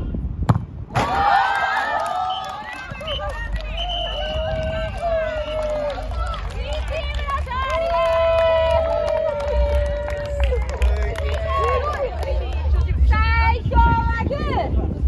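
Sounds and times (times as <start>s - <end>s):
football kick thump: 0.4s - 1.1s
people shouting and cheering: 1.0s - 14.6s.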